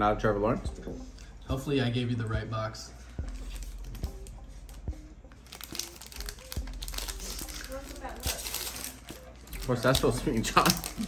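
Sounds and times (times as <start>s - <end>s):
foil wrapper crinkling: 5.4s - 11.0s
wrapper tearing open: 5.4s - 11.0s.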